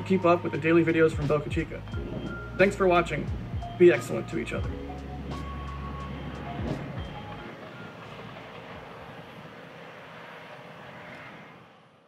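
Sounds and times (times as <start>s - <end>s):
deep rumble: 0.5s - 9.5s.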